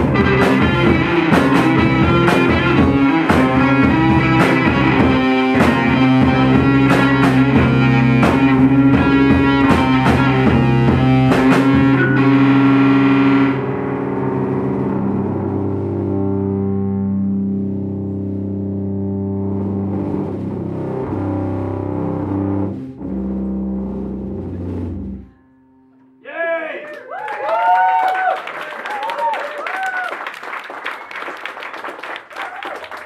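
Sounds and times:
drums: 0:00.0 - 0:25.3
electric guitar notes ringing: 0:00.0 - 0:26.2.

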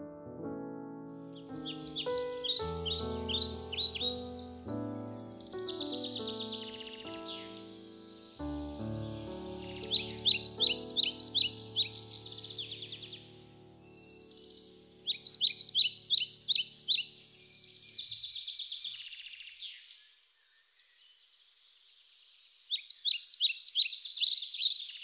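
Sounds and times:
background music of held chords: 0:00.0 - 0:14.7
bird chirps: 0:01.2 - 0:25.0.

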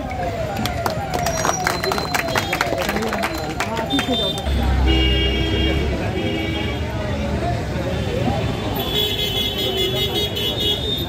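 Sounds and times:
crowd chatter: 0:00.0 - 0:11.0
vehicle horns honking: 0:03.9 - 0:07.0, 0:08.0 - 0:11.0.

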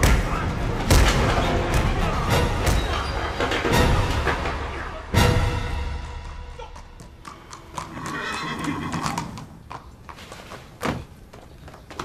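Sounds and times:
hooves clopping on stone: 0:06.1 - 0:12.0
horse whinny: 0:07.8 - 0:09.4.

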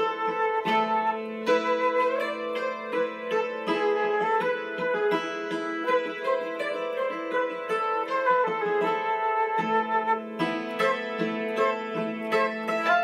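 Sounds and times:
flute melody: 0:00.0 - 0:13.0
hammered dulcimer: 0:00.0 - 0:13.0.

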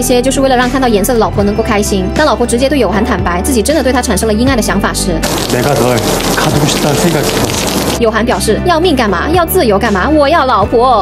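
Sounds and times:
loud steady rushing hiss: 0:05.2 - 0:08.0
young man speaking: 0:05.5 - 0:07.6.

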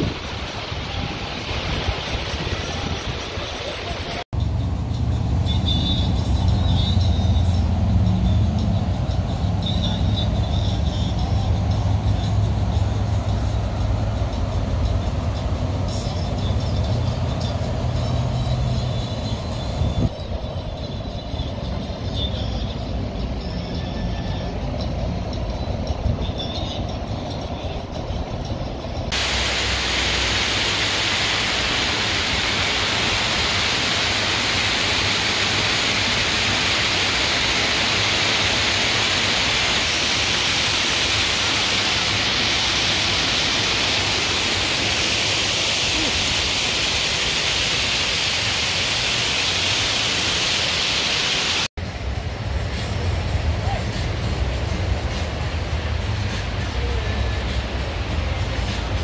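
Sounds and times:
artificial waterfall rushing: 0:00.0 - 0:04.3, 0:24.0 - 0:59.0.

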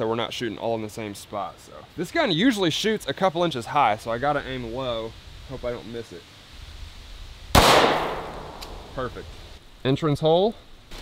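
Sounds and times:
pistol shot echoing: 0:07.6 - 0:09.0.

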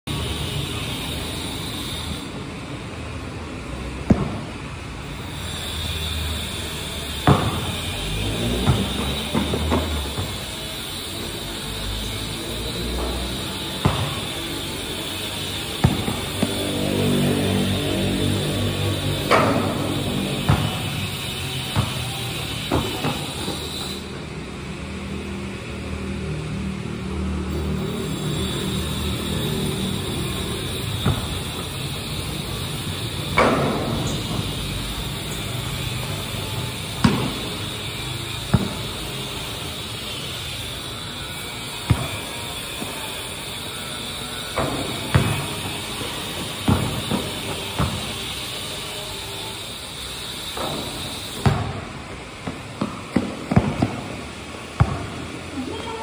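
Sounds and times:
basketball bouncing on concrete: 0:04.0 - 0:04.7, 0:06.6 - 0:11.4, 0:13.2 - 0:17.1, 0:18.6 - 0:24.1, 0:30.3 - 0:34.6, 0:36.0 - 0:39.6, 0:41.8 - 0:43.2, 0:44.6 - 0:48.8, 0:50.5 - 0:56.0.

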